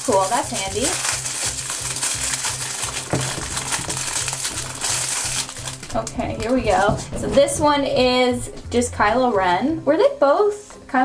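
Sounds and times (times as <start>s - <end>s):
plastic bag crinkling: 0.0s - 8.6s
background music with low beat: 1.6s - 11.0s.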